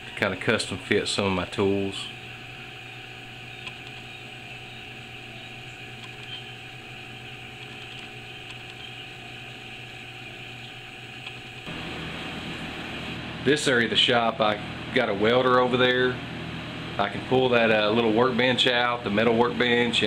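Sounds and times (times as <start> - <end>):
machine hum and hiss: 0.0 - 20.0.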